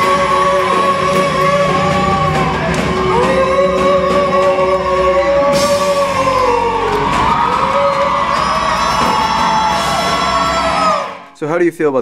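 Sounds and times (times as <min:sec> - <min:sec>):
live rock band playing: 0:00.0 - 0:10.2
audience whooping: 0:00.0 - 0:11.3.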